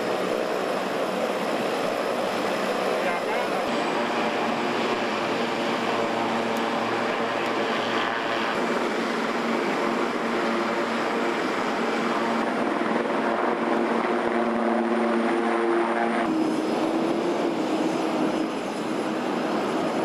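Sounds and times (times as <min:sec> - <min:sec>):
engine drone: 0:00.0 - 0:20.0.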